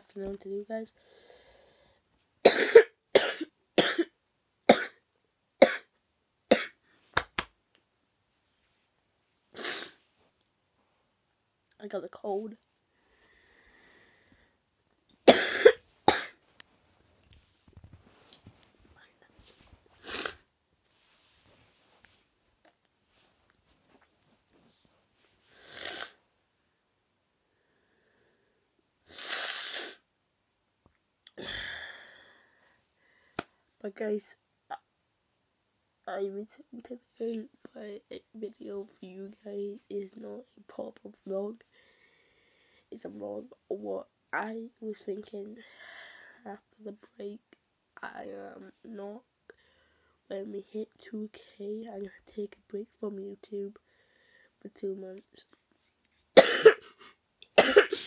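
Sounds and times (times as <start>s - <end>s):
boy coughing: 2.4s - 4.1s, 15.3s - 16.4s, 56.4s - 58.0s.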